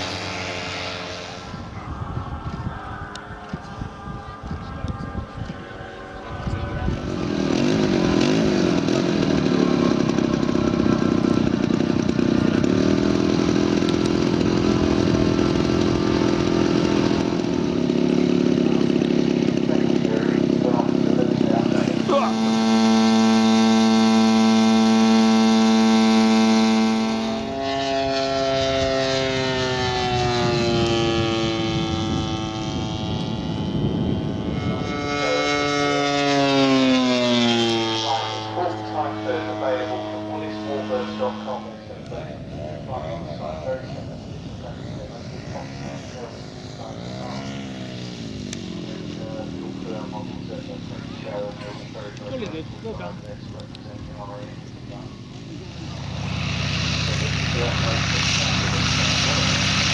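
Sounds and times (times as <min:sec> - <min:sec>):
model aircraft propeller engine: 0:00.0 - 0:59.9.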